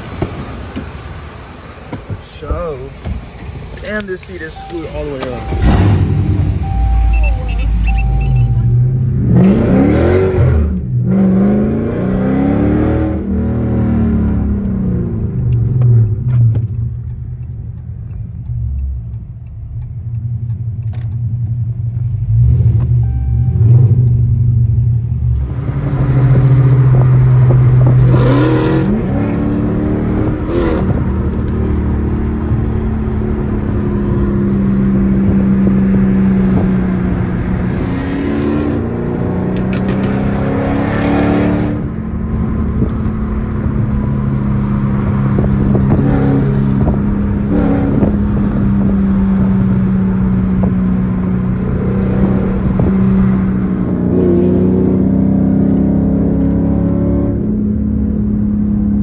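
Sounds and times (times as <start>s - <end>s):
car engine accelerating: 3.8s - 59.0s.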